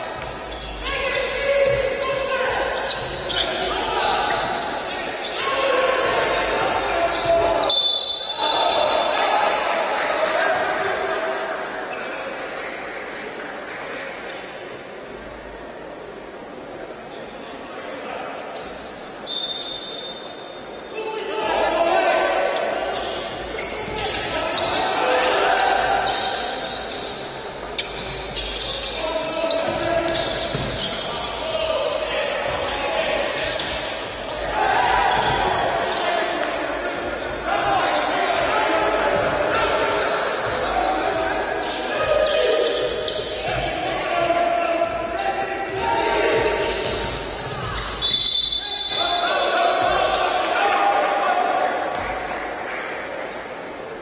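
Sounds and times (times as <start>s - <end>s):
players calling out: 0.1s - 12.2s, 19.6s - 52.3s
referee's whistle: 7.1s - 9.2s, 19.2s - 20.9s, 47.6s - 49.4s.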